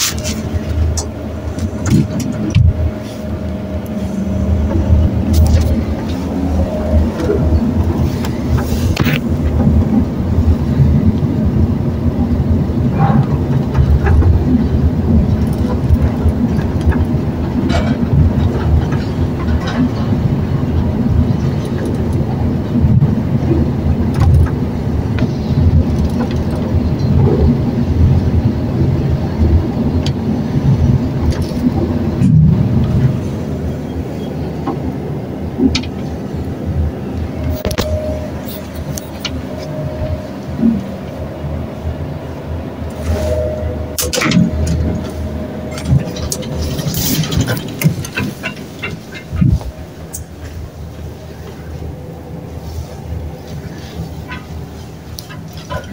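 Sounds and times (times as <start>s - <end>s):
elevator car rumbling: 0.0s - 55.9s.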